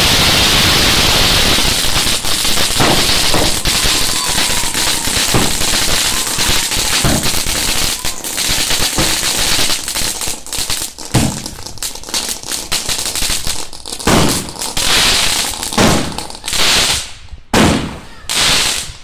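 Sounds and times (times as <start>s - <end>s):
fireworks bangs: 0.0s - 19.0s
fireworks crackling: 0.0s - 19.0s.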